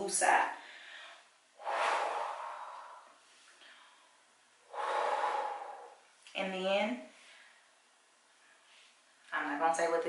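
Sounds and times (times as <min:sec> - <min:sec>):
woman breathing out deeply: 0:00.6 - 0:06.1.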